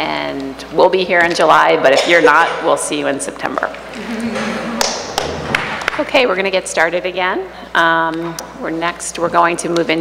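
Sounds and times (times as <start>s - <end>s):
murmur of voices in a hall: 3.8s - 5.6s.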